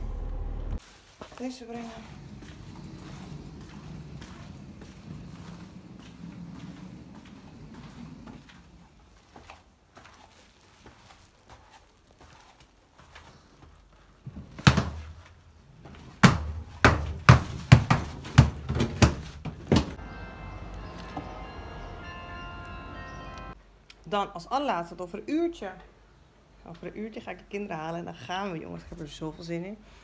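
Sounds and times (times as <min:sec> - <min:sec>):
luggage thudding down stairs: 0:02.2 - 0:09.0, 0:14.3 - 0:20.0
steady held tone: 0:20.0 - 0:23.6.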